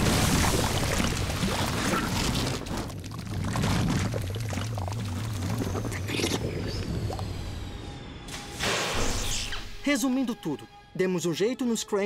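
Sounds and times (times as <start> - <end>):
thick ooze pouring and spilling: 0.0 - 7.2
low droning music: 4.8 - 12.0.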